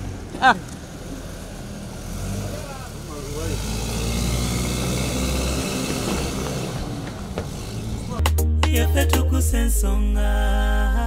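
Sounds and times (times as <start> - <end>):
tyres hissing on road: 0.0 - 8.2
car engine running: 0.0 - 8.4.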